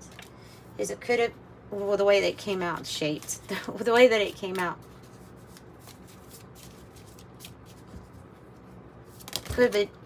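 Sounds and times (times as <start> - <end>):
cards being shuffled: 2.4 - 10.0.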